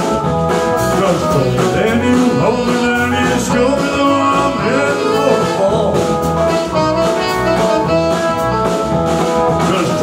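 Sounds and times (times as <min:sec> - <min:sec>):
live blues band playing: 0:00.0 - 0:10.0.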